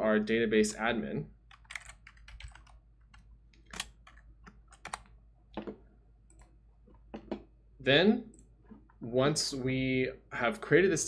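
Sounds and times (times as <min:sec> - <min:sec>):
computer keyboard keystrokes: 0:01.5 - 0:05.1.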